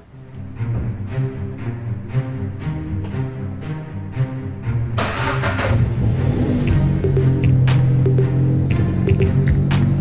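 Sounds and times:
dark music with low drone: 0:00.0 - 0:10.0
car engine revving: 0:05.0 - 0:10.0.

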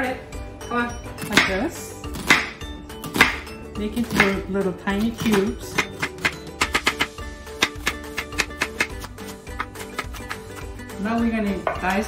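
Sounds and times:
background music with held notes: 0:00.0 - 0:12.0
knife dicing on wooden board: 0:05.0 - 0:10.6.

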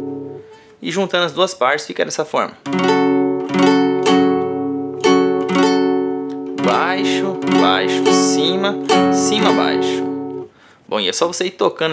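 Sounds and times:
acoustic guitar strumming: 0:00.0 - 0:00.8, 0:02.6 - 0:10.6.

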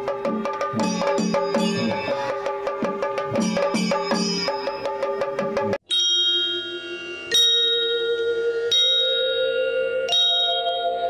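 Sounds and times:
drum-led music: 0:00.0 - 0:05.9
bell struck and ringing: 0:00.8 - 0:11.0.

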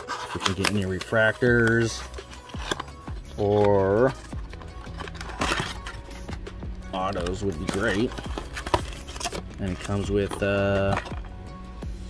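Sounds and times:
cardboard flap tearing: 0:00.0 - 0:06.3, 0:07.0 - 0:11.2.

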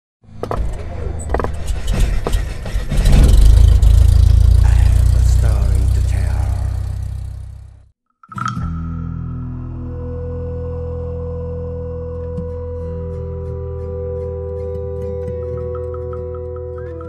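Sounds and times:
deep engine-like rumble: 0:00.7 - 0:07.9.

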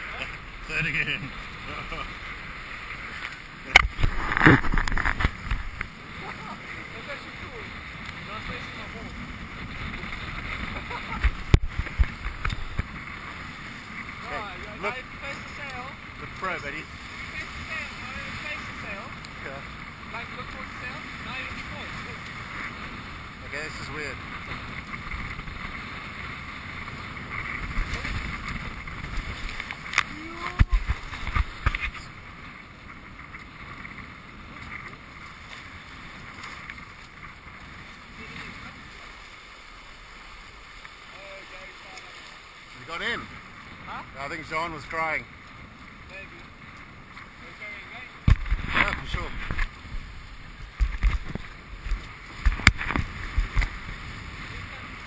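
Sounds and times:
wind buffeting microphone: 0:00.0 - 0:39.2, 0:42.9 - 0:55.0
water rushing along hull: 0:00.0 - 0:55.0.

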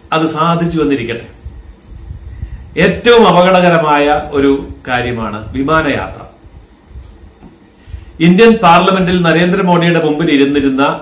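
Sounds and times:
faint low rumble: 0:01.1 - 0:08.2.

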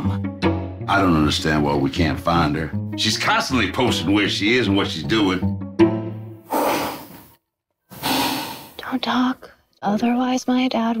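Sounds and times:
man sniffing deeply: 0:06.4 - 0:08.8
breath: 0:06.5 - 0:07.3, 0:07.9 - 0:08.8.

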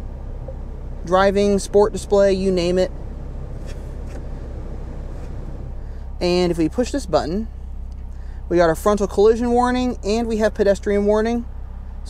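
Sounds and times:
car engine idling in cabin: 0:00.0 - 0:12.0.

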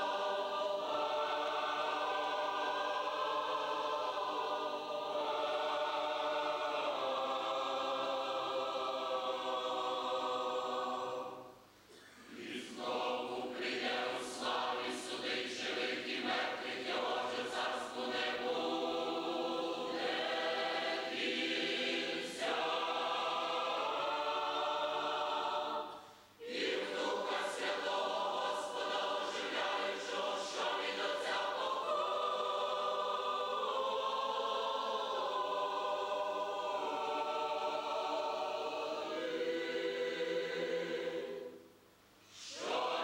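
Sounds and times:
mixed choir singing a hymn: 0:00.0 - 0:43.0.

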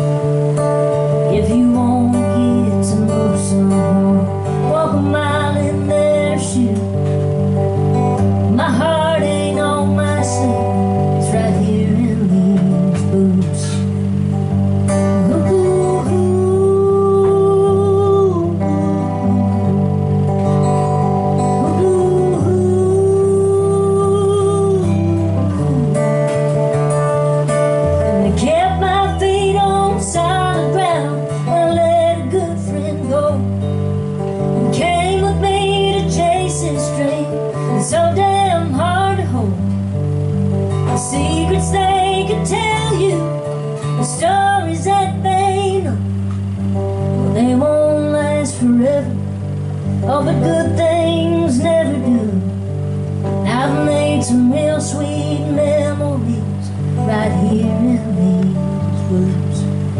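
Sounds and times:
strummed acoustic guitar: 0:00.0 - 0:59.9
woman singing country song: 0:00.0 - 0:59.9.

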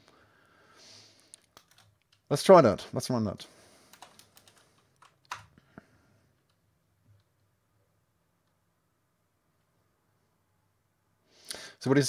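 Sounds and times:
keyboard keystrokes: 0:01.5 - 0:02.2, 0:03.9 - 0:05.5.

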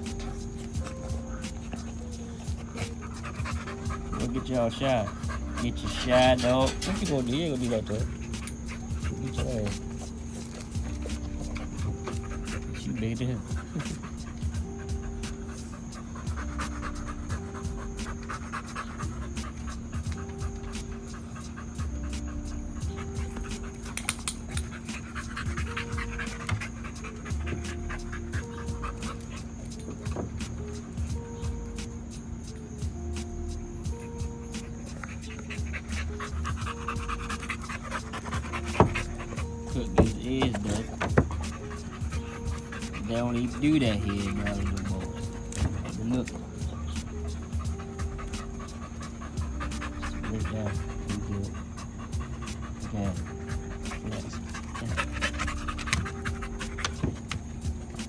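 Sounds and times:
background music: 0:00.0 - 0:58.0
dog panting: 0:00.0 - 0:58.0
background music with beat: 0:19.1 - 0:36.9.

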